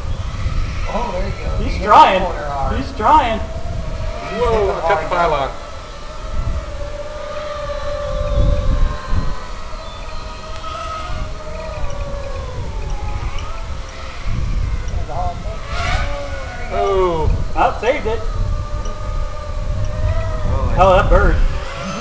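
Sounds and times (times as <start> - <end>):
drone propellers whining: 0.0 - 22.0
low rumbles: 0.0 - 22.0.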